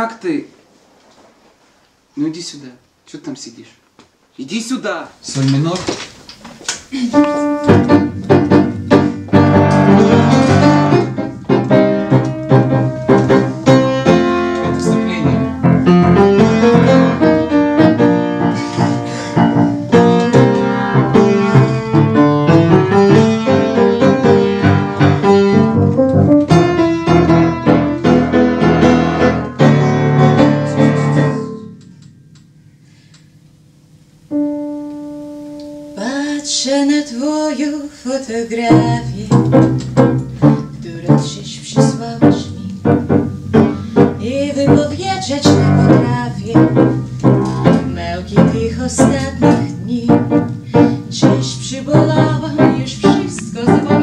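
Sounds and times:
upright piano playing: 6.9s - 36.7s, 38.5s - 54.0s
woman singing: 36.0s - 39.7s, 40.8s - 43.0s, 44.0s - 47.0s, 47.6s - 54.0s.

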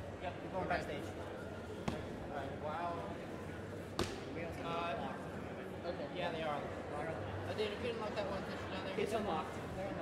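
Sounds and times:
indistinct talk of people: 0.0s - 10.0s.

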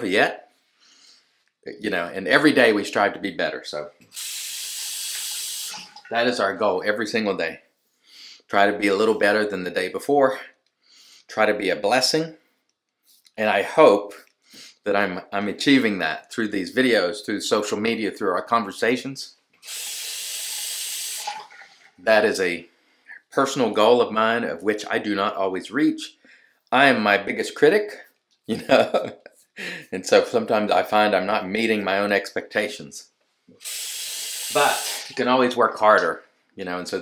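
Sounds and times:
sink tap running: 4.1s - 6.2s, 33.6s - 35.2s
water hissing: 4.1s - 6.2s, 19.6s - 21.8s, 33.6s - 35.2s.

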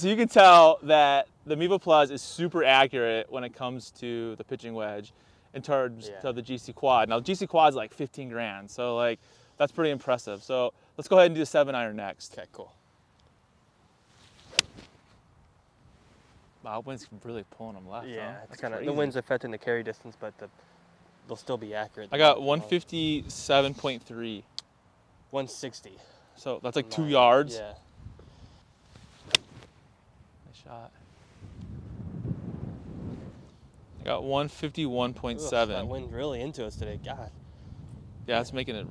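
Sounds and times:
golf club swing swish: 14.0s - 15.2s, 28.8s - 29.9s
golf club striking ball: 14.4s - 15.0s, 29.2s - 29.7s
wind buffeting microphone: 22.9s - 23.7s, 27.8s - 28.5s, 31.2s - 34.3s, 35.1s - 38.9s.

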